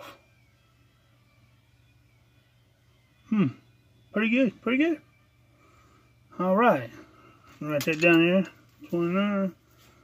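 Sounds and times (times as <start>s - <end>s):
faint low hum: 0.0s - 10.0s
man humming hmm: 3.3s - 3.7s.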